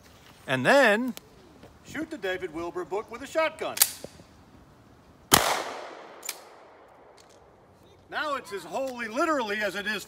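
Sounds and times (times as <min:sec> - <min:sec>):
shotgun blast with echo: 0:05.3 - 0:06.2.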